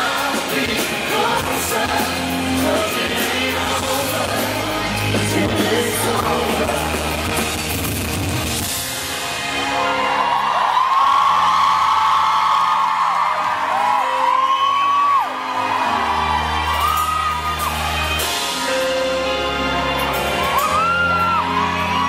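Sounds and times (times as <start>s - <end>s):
live pop band: 0.0s - 22.0s.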